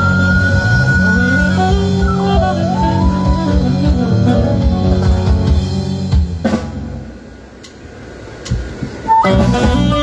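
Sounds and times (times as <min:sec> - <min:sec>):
saxophone: 0:00.0 - 0:06.2, 0:09.1 - 0:10.0
guitar: 0:00.0 - 0:06.8, 0:09.2 - 0:10.0
bass: 0:00.0 - 0:10.0
drums: 0:00.0 - 0:10.0.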